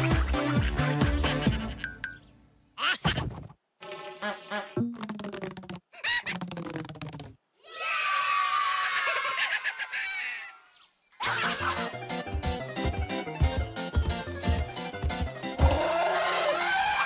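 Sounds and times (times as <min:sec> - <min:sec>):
cartoon voices chattering and laughing: 0:05.9 - 0:07.2, 0:08.8 - 0:10.6, 0:11.2 - 0:12.0.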